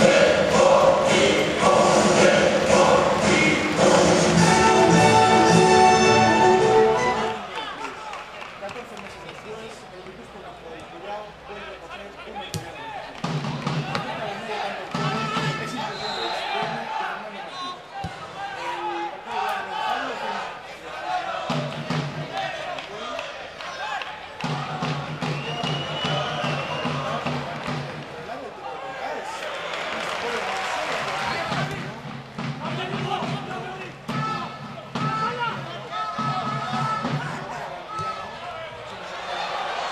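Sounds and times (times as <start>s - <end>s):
crowd shouting: 0.0s - 8.1s, 13.8s - 27.3s, 32.6s - 39.9s.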